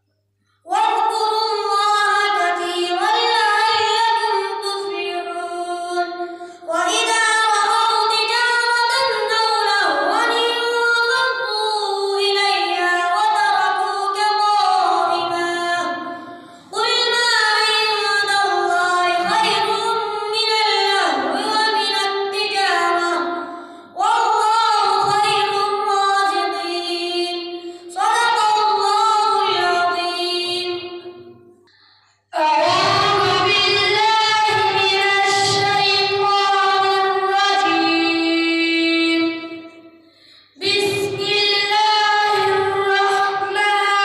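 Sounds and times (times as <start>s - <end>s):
boy chanting melodically: 0.7s - 31.4s, 32.4s - 40.0s, 40.6s - 44.0s.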